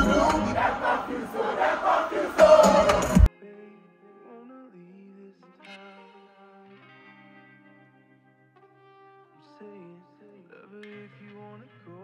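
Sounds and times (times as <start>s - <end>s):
crowd shouting and chanting: 0.0s - 3.3s.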